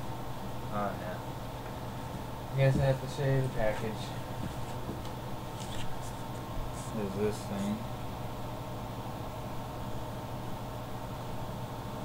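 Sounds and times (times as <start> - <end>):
low hum of room noise: 0.0 - 12.0.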